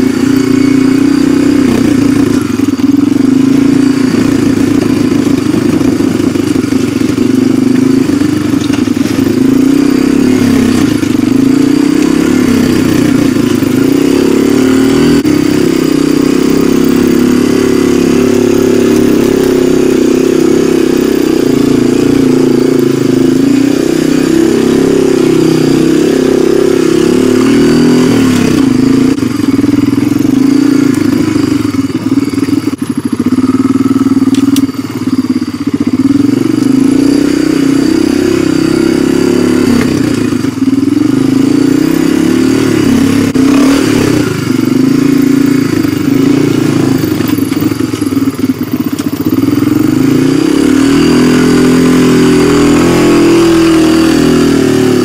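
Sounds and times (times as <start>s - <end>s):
atv engine running: 0.0s - 55.0s.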